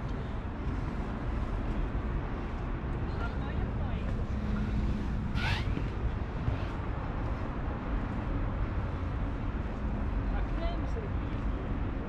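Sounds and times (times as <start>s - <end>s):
distant traffic: 0.0s - 12.0s.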